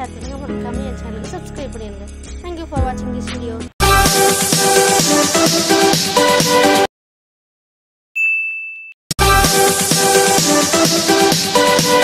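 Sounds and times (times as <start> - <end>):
bell-like notification ding: 8.2 - 9.0.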